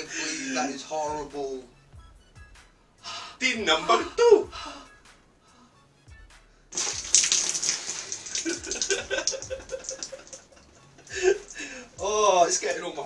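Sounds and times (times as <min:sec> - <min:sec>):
thick soup pouring and splattering: 0:06.8 - 0:10.5.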